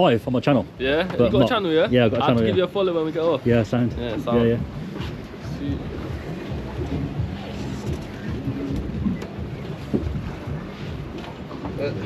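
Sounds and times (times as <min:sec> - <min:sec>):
wind rumbling on microphone: 0:03.4 - 0:12.0.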